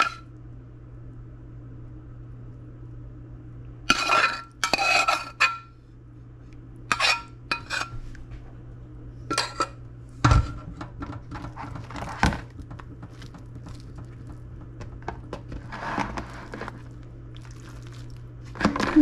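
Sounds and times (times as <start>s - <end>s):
steady low hum: 0.0s - 19.0s
metal spoon scraping saucepan: 3.9s - 5.7s, 6.9s - 8.0s, 9.3s - 9.8s.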